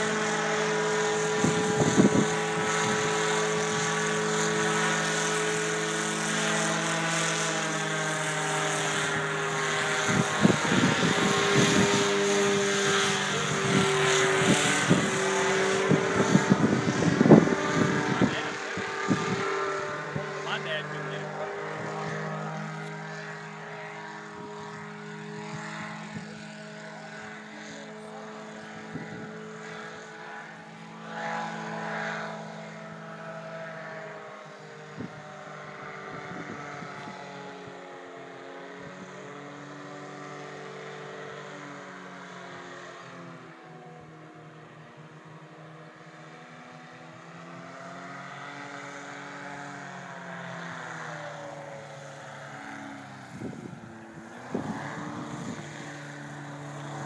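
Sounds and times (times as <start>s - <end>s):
engine and propeller droning overhead: 0.0s - 57.0s.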